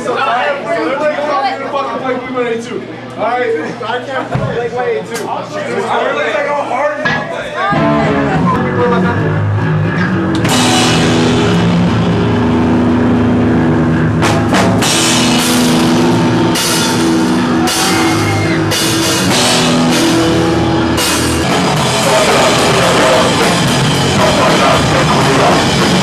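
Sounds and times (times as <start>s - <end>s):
drums: 7.0s - 26.0s
distorted guitar chords: 7.7s - 26.0s.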